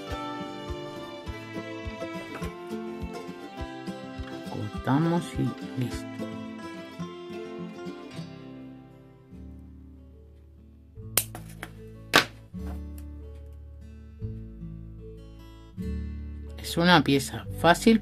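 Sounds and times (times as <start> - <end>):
plucked acoustic guitar music: 0.0 - 18.0.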